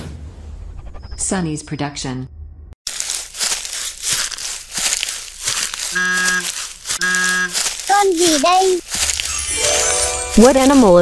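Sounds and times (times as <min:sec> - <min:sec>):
crackling rustling noise: 0:02.8 - 0:11.0
short steady tones: 0:07.0 - 0:07.6.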